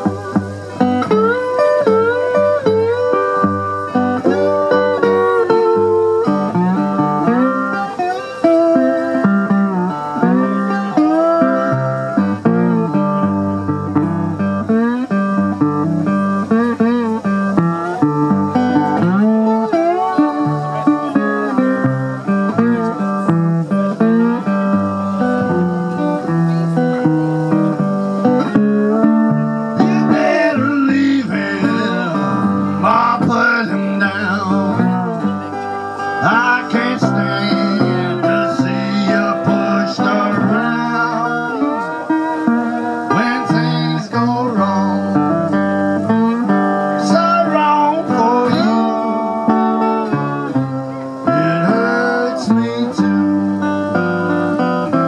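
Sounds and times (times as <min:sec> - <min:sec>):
bluesy slide guitar: 0:00.0 - 0:55.0.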